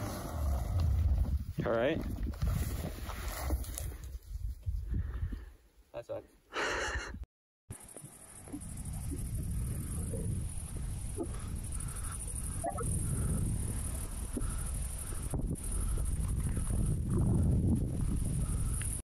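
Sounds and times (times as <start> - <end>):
wind rumbling on microphone: 0.0 - 5.6, 8.0 - 19.0.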